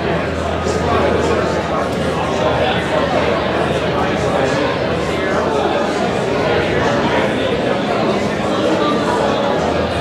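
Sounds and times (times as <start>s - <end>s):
crowd chatter in a hall: 0.0s - 10.0s.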